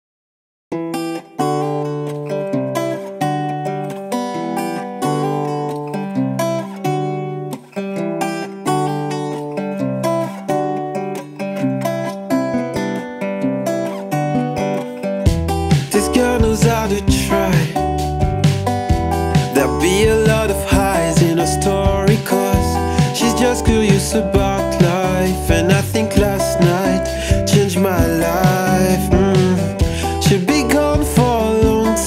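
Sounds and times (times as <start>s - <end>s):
acoustic guitar strumming chords: 0.7s - 32.0s
deep low end bass: 15.3s - 23.1s.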